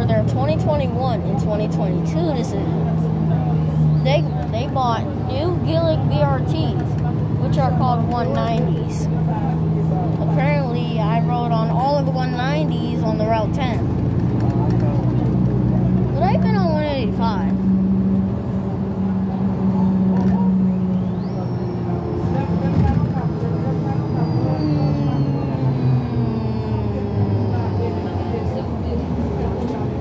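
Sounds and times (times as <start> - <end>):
people talking: 0.0 - 3.1, 4.0 - 15.4, 16.1 - 17.6, 21.4 - 30.0
bus engine droning: 0.0 - 30.0.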